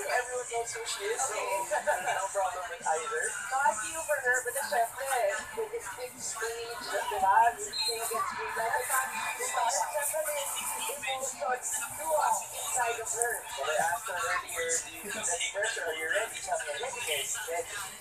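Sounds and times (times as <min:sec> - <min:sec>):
sports commentators talking on television: 0:00.0 - 0:18.0.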